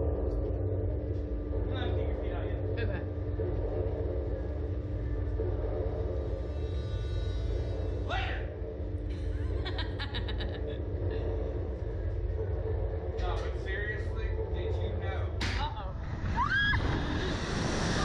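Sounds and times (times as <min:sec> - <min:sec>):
low rumble and hum: 0:00.0 - 0:18.0
wind rushing over microphone: 0:15.9 - 0:18.0.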